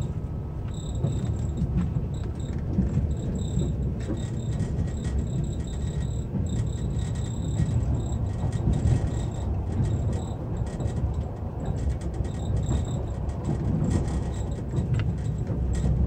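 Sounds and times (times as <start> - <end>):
train rumble inside carriage: 0.0 - 16.0.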